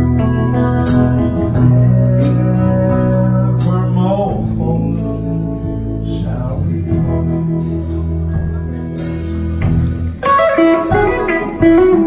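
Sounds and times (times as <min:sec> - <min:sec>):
guitar note bending: 0:00.0 - 0:05.5, 0:07.0 - 0:12.0
live band playing: 0:00.0 - 0:12.0.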